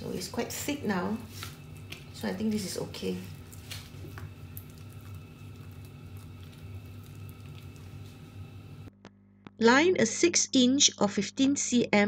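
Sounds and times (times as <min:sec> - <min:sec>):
spatula stirring thick dough: 0:00.0 - 0:08.9
low steady hum: 0:00.0 - 0:11.7.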